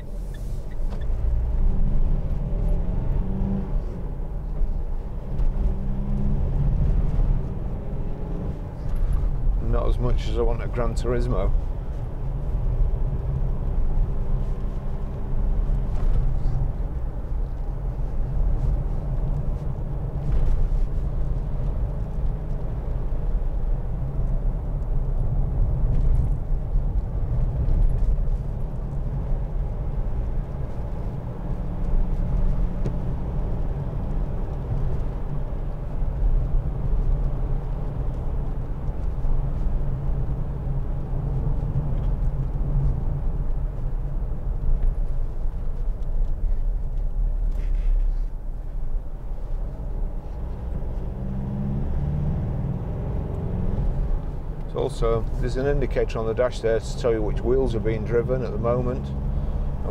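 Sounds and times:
diesel engine drone in cab: 0:00.0 - 0:59.9
tyre and road rumble: 0:00.0 - 0:59.9.

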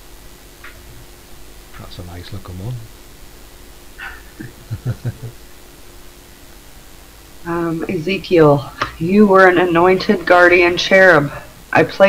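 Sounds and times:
faint low hum: 0:00.0 - 0:12.0
person chuckling: 0:04.0 - 0:05.4.

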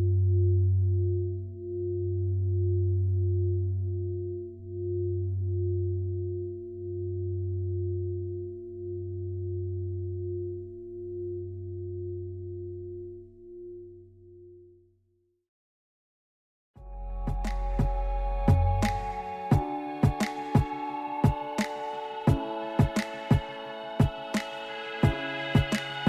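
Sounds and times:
electronic drone chord: 0:16.8 - 0:26.0.

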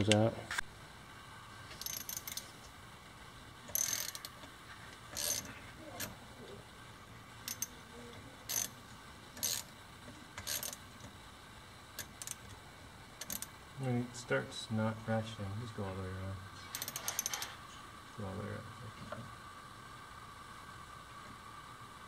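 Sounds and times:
ratchet wrench clicking: 0:01.7 - 0:02.5, 0:03.7 - 0:04.5, 0:05.1 - 0:06.2, 0:07.4 - 0:07.8, 0:08.5 - 0:08.8, 0:09.4 - 0:09.7, 0:10.4 - 0:11.1, 0:12.0 - 0:12.6, 0:13.2 - 0:13.5, 0:16.7 - 0:17.6.

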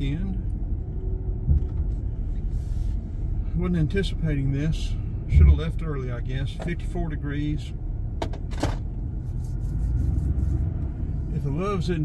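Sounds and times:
car tyre and engine rumble: 0:00.0 - 0:12.0.

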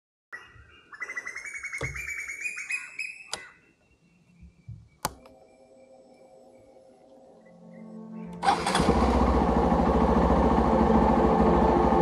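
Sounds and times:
bird trilling: 0:00.4 - 0:08.3.

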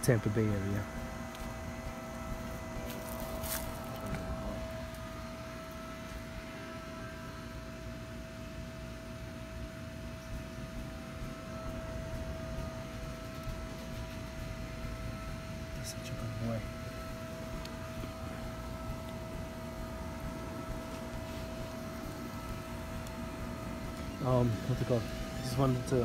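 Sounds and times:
mechanical hum with whining tone: 0:00.0 - 0:26.0.

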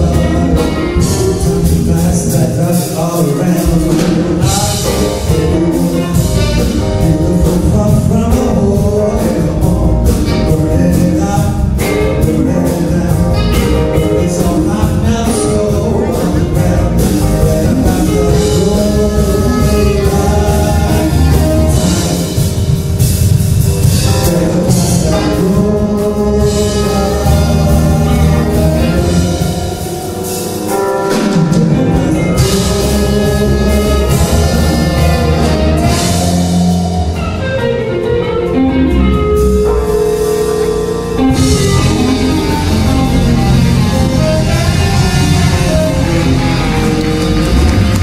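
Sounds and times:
bass guitar: 0:00.0 - 0:48.0
drums: 0:00.0 - 0:48.0
electric guitar: 0:00.0 - 0:48.0
funk band playing: 0:00.0 - 0:48.0.

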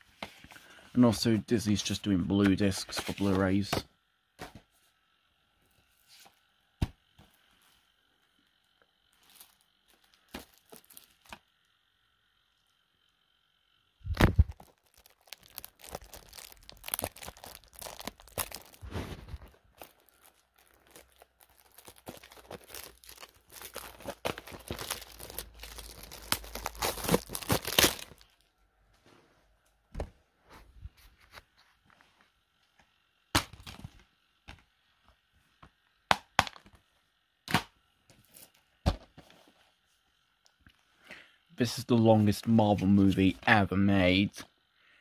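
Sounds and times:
crackling rustling handling noise: 0:00.0 - 0:03.8, 0:07.4 - 0:11.7, 0:14.1 - 0:32.9.

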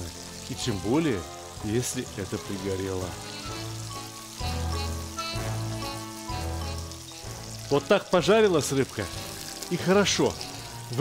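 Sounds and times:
background music: 0:00.0 - 0:11.0
fish sizzling in hot oil: 0:00.0 - 0:11.0.

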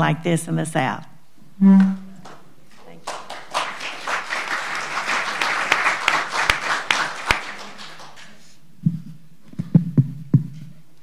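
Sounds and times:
audience applauding: 0:02.2 - 0:08.6.

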